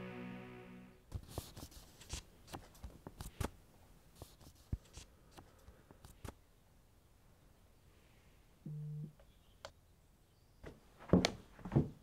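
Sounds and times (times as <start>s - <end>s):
low electronic tone: 0.0s - 1.0s.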